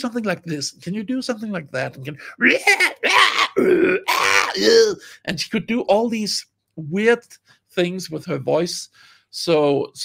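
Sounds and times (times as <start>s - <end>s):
man grunting vocal noises: 2.4s - 5.0s.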